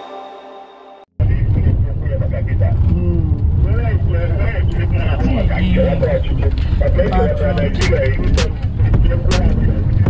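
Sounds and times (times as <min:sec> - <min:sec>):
car interior rumble: 0:01.2 - 0:10.0
indistinct voices talking: 0:01.2 - 0:10.0.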